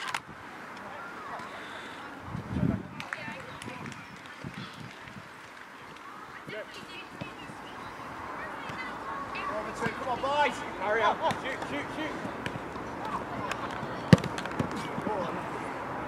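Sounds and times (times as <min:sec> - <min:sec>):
players shouting: 0:06.1 - 0:16.0
football being kicked: 0:11.2 - 0:11.7, 0:14.1 - 0:14.8.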